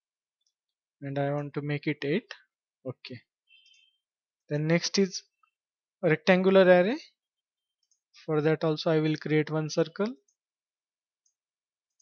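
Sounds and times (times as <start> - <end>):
person speaking: 1.0 - 3.2, 8.2 - 10.3.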